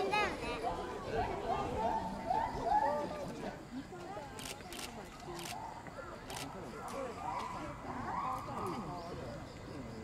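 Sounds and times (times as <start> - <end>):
faint voices: 0.0 - 10.0
camera shutters clicking: 4.4 - 5.6.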